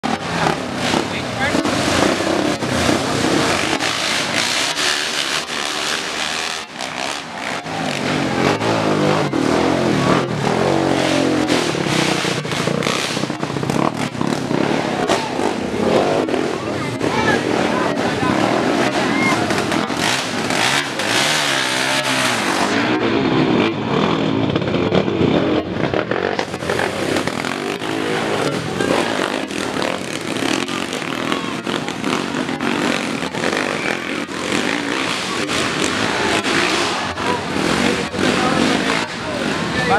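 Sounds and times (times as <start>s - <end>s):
crowd of spectators talking: 0.0s - 39.9s
dirt bike engines revving: 0.0s - 39.9s.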